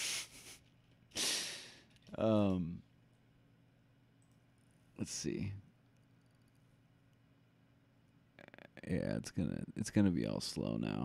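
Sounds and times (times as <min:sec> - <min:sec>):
man breathing close to microphone: 0:00.0 - 0:00.6, 0:01.2 - 0:01.9.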